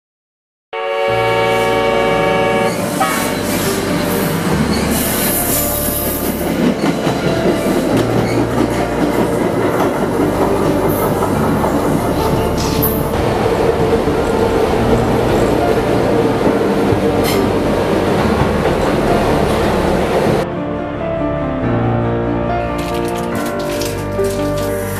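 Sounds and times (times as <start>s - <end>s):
train horn: 0.7s - 4.3s
subway train wheels rumbling: 0.8s - 24.9s.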